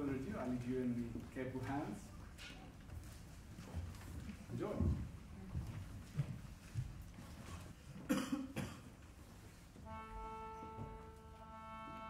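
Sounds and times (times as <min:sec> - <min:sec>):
person coughing: 0:08.1 - 0:09.0
sustained instrumental note: 0:09.8 - 0:12.0.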